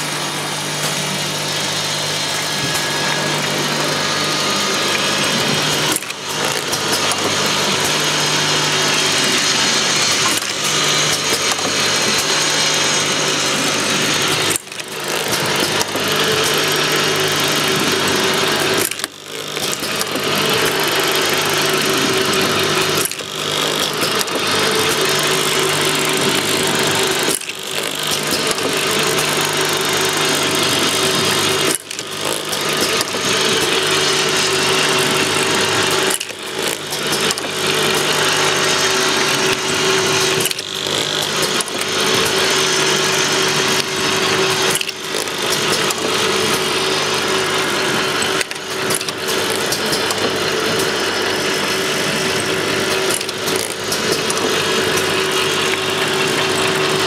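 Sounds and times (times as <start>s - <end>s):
filling machine clatter and hum: 0.0s - 57.0s.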